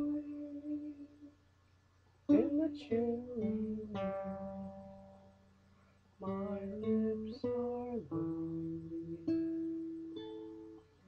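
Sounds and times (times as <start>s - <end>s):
acoustic guitar chord strummed: 0.0s - 1.3s, 2.3s - 5.6s, 6.2s - 11.0s.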